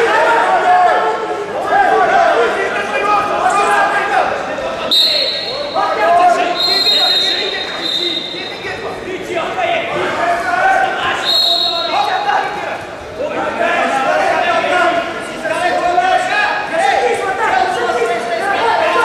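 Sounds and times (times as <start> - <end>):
shouting voices echoing: 0.0 - 19.0
referee's whistle blasts: 4.9 - 8.8, 11.2 - 12.3.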